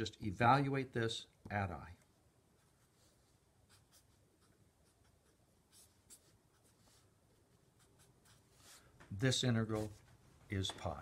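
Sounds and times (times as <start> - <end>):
marker scratching on paper: 2.6 - 10.1.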